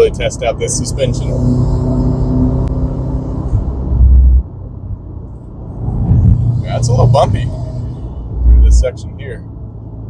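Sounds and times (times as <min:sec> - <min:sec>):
car engine under load: 0:00.0 - 0:10.0
road and wind noise: 0:00.0 - 0:10.0.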